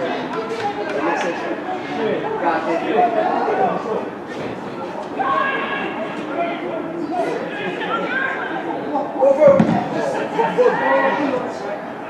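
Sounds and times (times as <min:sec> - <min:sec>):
voices talking and calling out: 0:00.0 - 0:12.0
loud thud: 0:09.5 - 0:09.9.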